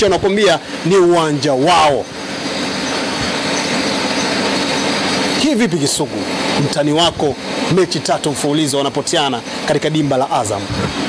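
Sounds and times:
steady mechanical noise: 0.0s - 11.0s.

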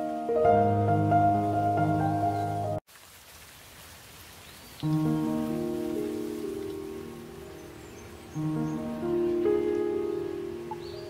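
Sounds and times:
soft instrumental music: 0.0s - 2.8s, 4.8s - 11.0s
steady rain falling: 0.0s - 11.0s.

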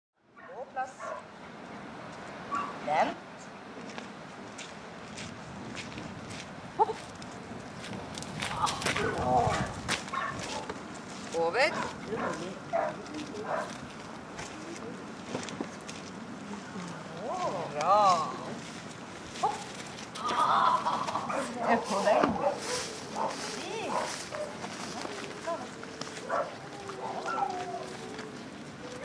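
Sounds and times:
dog yelping: 25.4s - 28.3s.

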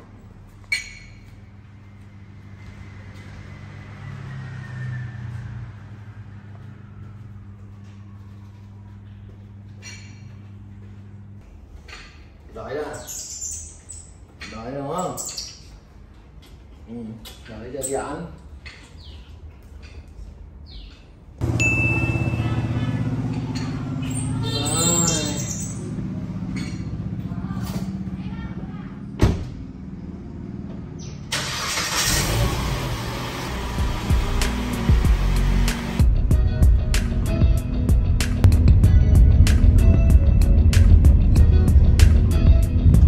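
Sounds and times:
low mechanical hum: 5.0s - 17.5s
brief high beep: 21.6s - 22.5s
wavering high-pitched call: 24.0s - 25.9s
car engine idling: 25.8s - 42.8s.

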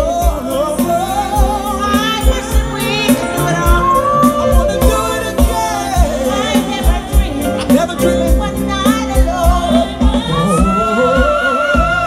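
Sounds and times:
live band music: 0.0s - 12.0s
person singing: 0.0s - 12.0s
steady drum beat: 0.0s - 12.0s.

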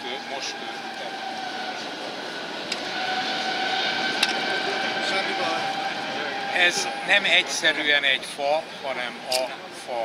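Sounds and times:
train rumble: 0.0s - 7.8s
thin whining tones: 0.0s - 10.0s.

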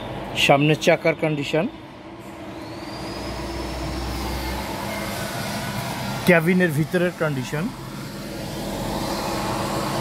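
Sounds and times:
faint high whine: 0.0s - 10.0s.

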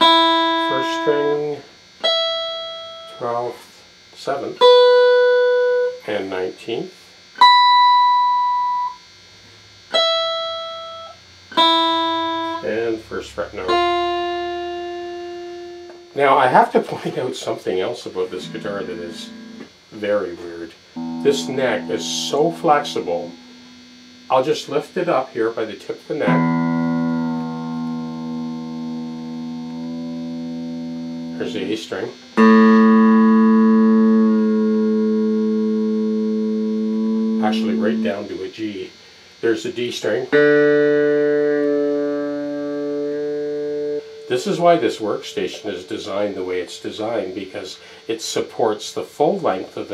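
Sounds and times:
electric guitar single notes plucked: 0.0s - 3.4s, 4.6s - 6.0s, 7.4s - 9.1s, 9.9s - 16.5s, 18.0s - 38.9s, 40.2s - 45.8s.

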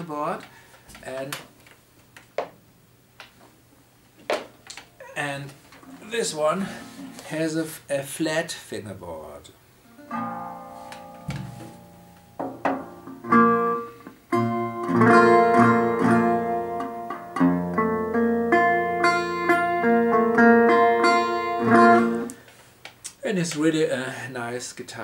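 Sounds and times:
resonator guitar fingerpicking: 4.8s - 7.2s, 9.8s - 22.4s.

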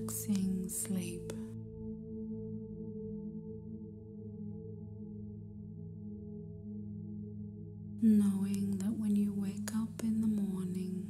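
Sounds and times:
person whispering: 0.0s - 1.5s
ambient meditation music drone: 0.0s - 11.0s.

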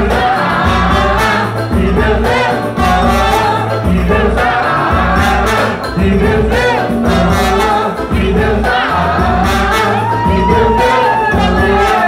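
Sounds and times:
samba band playing: 0.0s - 12.0s
trombone: 0.0s - 12.0s
voices singing together: 0.0s - 12.0s
trumpet: 0.1s - 12.0s.

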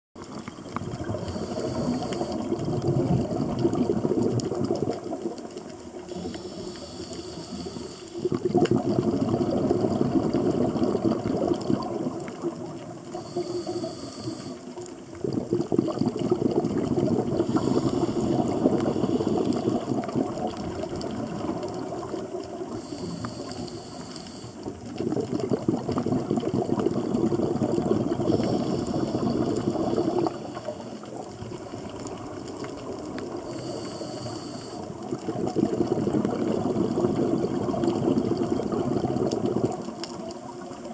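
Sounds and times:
exhaled bubbles underwater: 0.2s - 40.9s
regulator hissing inhale: 1.0s - 2.6s, 6.1s - 8.4s, 13.0s - 15.0s, 17.3s - 20.1s, 22.7s - 24.8s, 28.1s - 31.3s, 33.4s - 35.2s.

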